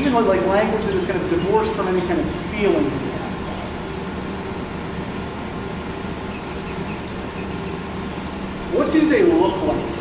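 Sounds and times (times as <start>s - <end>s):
air handling hum and hiss: 0.0s - 10.0s.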